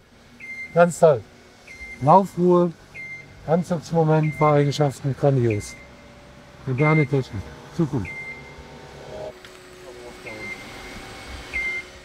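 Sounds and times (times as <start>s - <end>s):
steady background hum: 0.0s - 12.0s
short high beep: 8.0s - 8.6s, 10.3s - 11.0s, 11.6s - 11.9s.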